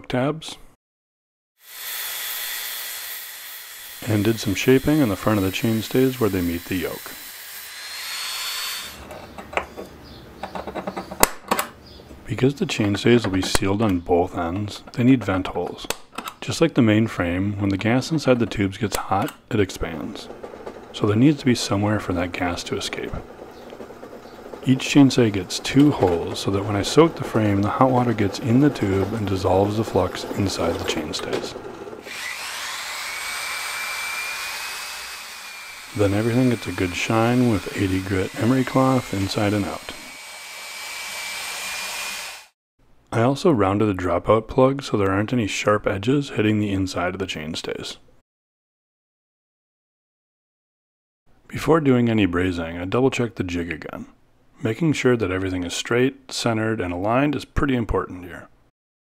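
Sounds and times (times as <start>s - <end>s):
electric drill whining: 1.6s - 9.0s, 31.8s - 42.6s
belt sander grinding steel: 1.6s - 9.1s, 20.1s - 42.6s.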